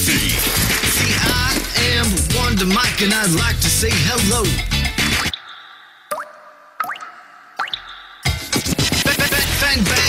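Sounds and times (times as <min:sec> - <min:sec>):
water drip sound effects: 0:05.3 - 0:08.1.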